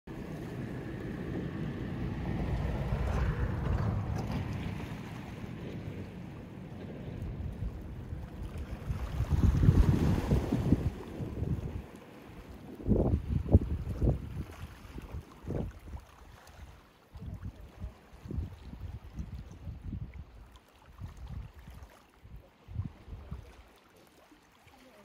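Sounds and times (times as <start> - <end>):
wind buffeting microphone: 0.1 - 23.5
sea water washing around rocks: 0.1 - 25.0.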